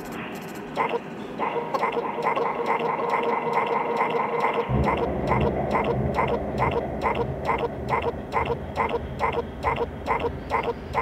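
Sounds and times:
synthesizer short pulses: 0.8 - 11.0
held higher synth tone: 1.8 - 11.0
low bass drone: 4.6 - 11.0.

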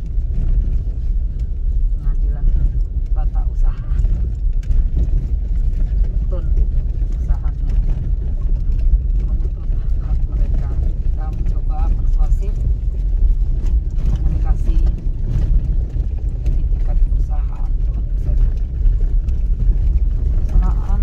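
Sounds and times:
vehicle rumbling over gravel: 0.0 - 21.0.

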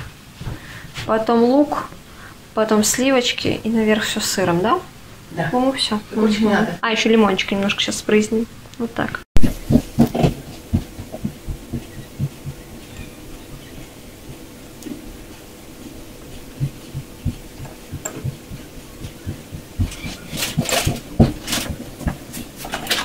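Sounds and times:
soft low thumps: 9.4 - 22.6
sharp clicks and rustles: 15.8 - 23.0.

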